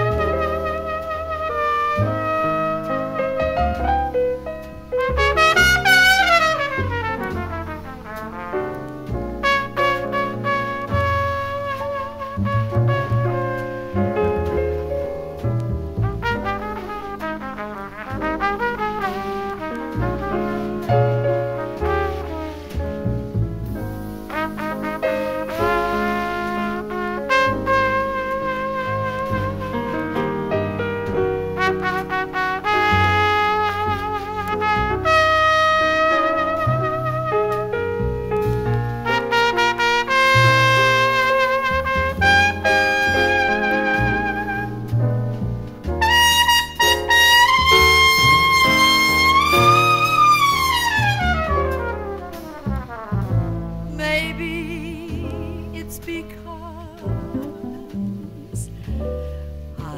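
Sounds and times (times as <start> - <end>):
double bass: 0.0 - 59.9
drums: 0.0 - 59.9
jazz trumpet solo: 0.0 - 59.9
piano: 0.0 - 59.9.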